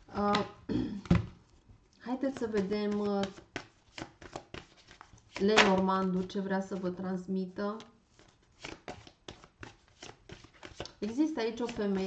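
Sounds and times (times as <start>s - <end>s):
cards being shuffled: 2.3s - 5.9s, 8.1s - 12.0s.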